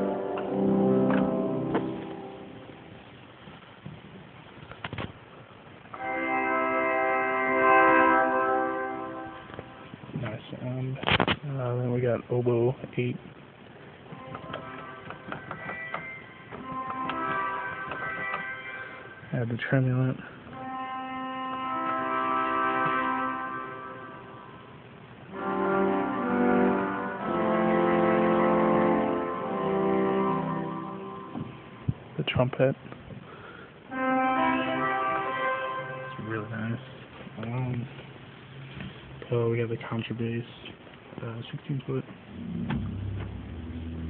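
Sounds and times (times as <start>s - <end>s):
pipe organ reed stop: 0.0s - 2.7s, 14.1s - 19.4s, 20.5s - 24.6s, 25.3s - 31.8s.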